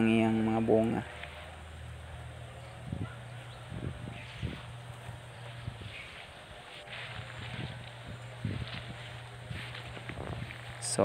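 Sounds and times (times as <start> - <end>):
low outdoor hum: 0.0 - 11.0
soft footsteps on grass: 0.0 - 11.0.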